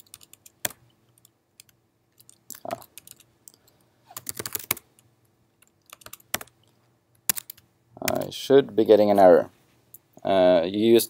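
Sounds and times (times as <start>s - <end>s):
laptop keyboard typing: 0.0s - 3.6s, 4.2s - 5.0s, 5.6s - 6.6s, 7.2s - 8.3s.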